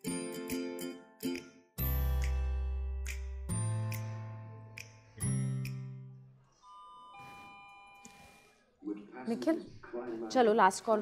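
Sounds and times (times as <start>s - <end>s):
electronic chime: 6.5s - 8.5s.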